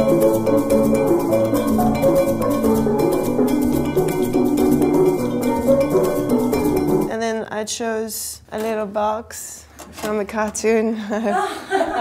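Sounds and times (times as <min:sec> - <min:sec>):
low bass notes: 0:00.0 - 0:07.1
steady percussion beat: 0:00.0 - 0:07.1
steelpans playing bright melody: 0:00.0 - 0:07.1.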